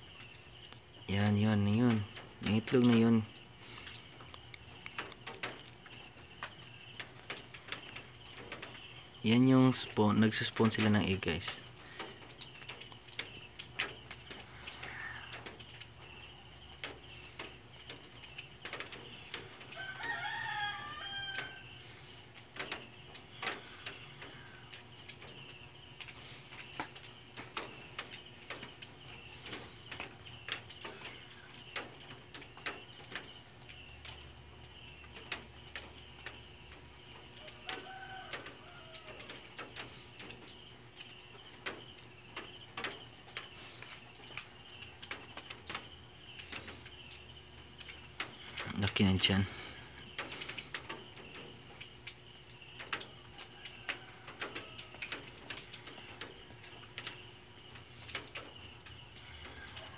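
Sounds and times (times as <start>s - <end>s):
crickets chirping: 0.0s - 59.9s
rooster crowing: 14.5s - 15.6s, 19.4s - 22.1s, 37.2s - 40.0s, 53.0s - 56.3s, 58.9s - 59.9s.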